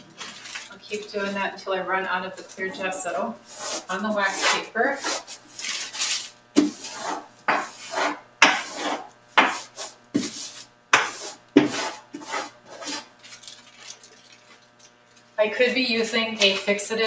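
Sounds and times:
hand rubbing wax paper: 2.4s - 14.6s, 15.4s - 17.0s.

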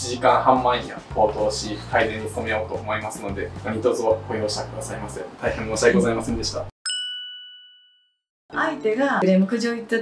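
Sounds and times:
woman speaking: 8.5s - 10.0s.

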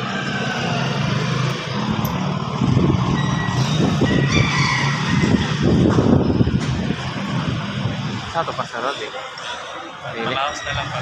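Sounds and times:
small motorcycle engine pulling away: 0.0s - 5.9s.

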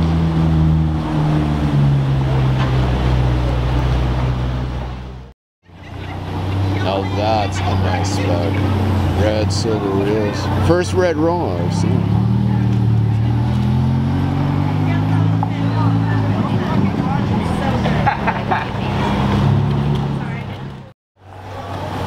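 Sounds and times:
car engine driving off: 0.0s - 22.0s.

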